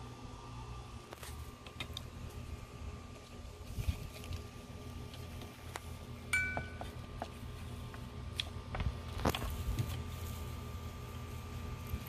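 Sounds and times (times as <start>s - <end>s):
bright chime-like clink: 6.3s - 6.8s.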